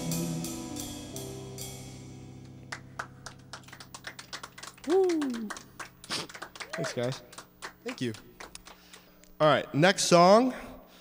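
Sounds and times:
people clapping: 2.7s - 9.3s
person whooping: 4.8s - 5.7s.

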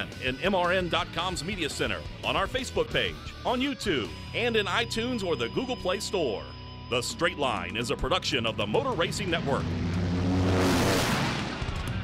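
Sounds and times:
vehicle passing by: 9.5s - 12.0s.

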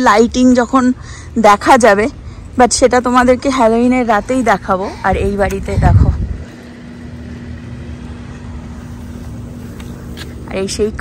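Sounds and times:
low rumble: 1.8s - 10.6s
small motor humming: 4.2s - 10.6s.

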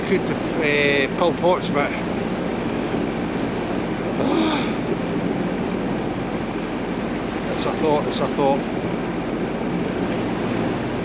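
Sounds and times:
boat engine running: 0.0s - 11.0s
water rushing past hull: 0.0s - 11.0s
wind: 0.0s - 11.0s.

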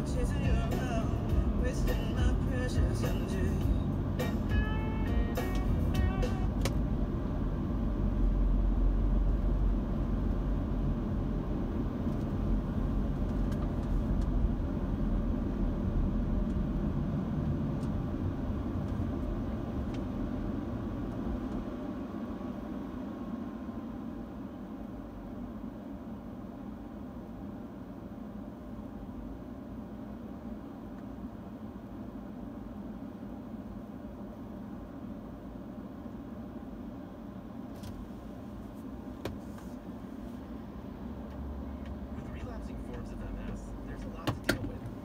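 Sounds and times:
car radio music: 0.0s - 7.0s, 42.1s - 45.0s
road and engine rumble in car: 0.0s - 45.0s.

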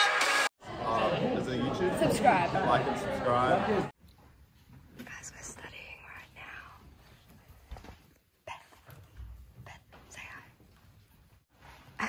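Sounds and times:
people whispering: 5.0s - 7.0s, 8.4s - 10.6s.

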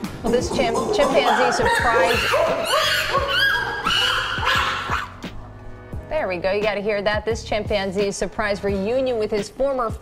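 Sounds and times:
background music with beat: 0.0s - 10.0s
chimpanzee excited calls: 0.3s - 5.3s.

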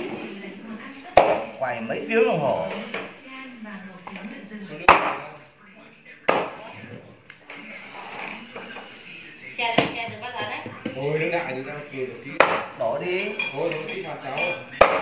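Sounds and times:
cleaver chopping onto wooden board: 12.4s - 12.7s, 14.8s - 15.0s.

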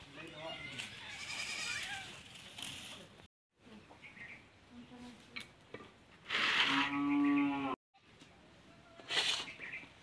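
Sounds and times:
goat bleating: 1.1s - 2.1s.

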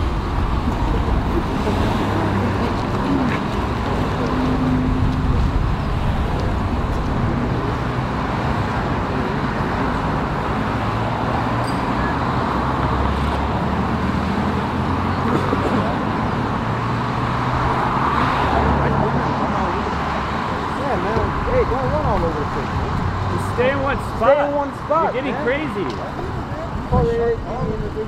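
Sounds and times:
faint voices: 0.0s - 10.4s, 14.7s - 17.0s, 17.7s - 28.0s
road traffic engine hum: 0.0s - 28.0s.

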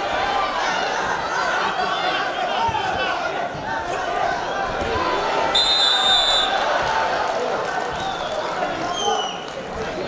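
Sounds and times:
crowd murmur: 0.0s - 10.0s
referee's whistle blast: 5.6s - 6.6s.

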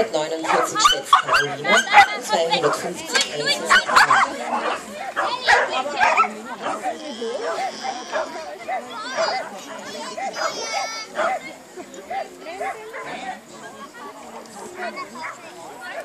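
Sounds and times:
spectators chattering: 0.0s - 16.0s
dog barking: 0.5s - 2.8s, 3.6s - 8.4s, 9.1s - 9.5s, 10.2s - 11.4s.

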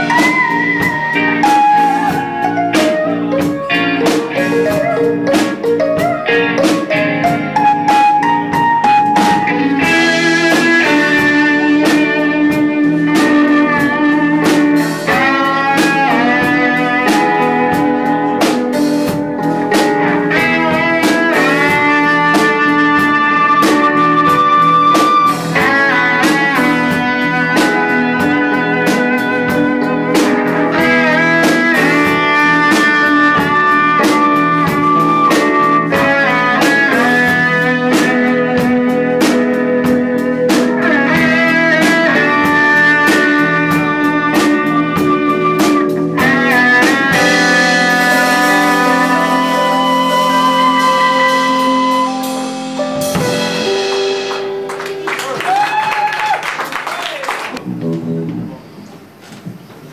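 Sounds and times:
drum beat: 0.0s - 52.1s, 52.7s - 56.4s
keyboard: 0.0s - 55.5s
bass guitar: 0.0s - 56.6s, 57.4s - 59.2s
electric guitar: 0.0s - 59.9s.

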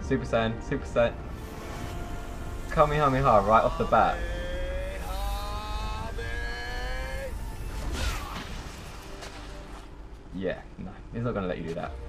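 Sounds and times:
low rumble: 0.0s - 12.0s
energy blast held pitched tones: 0.9s - 10.4s
whoosh: 1.3s - 10.3s.

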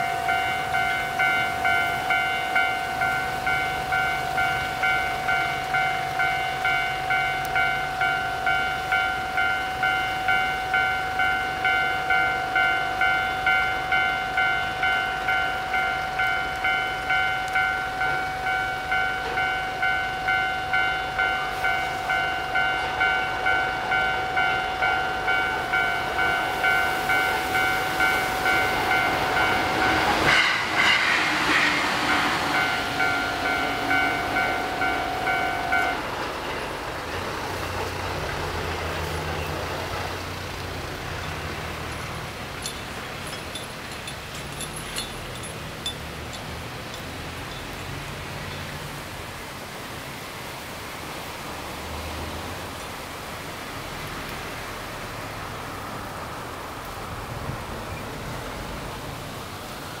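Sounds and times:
rush of noise: 21.4s - 60.0s
pulsing electronic alarm tone: 32.1s - 36.0s.

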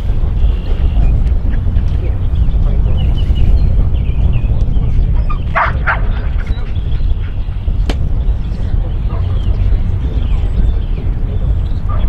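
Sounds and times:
wind rumble on microphone: 0.0s - 12.0s
dog barking: 5.6s - 6.2s.

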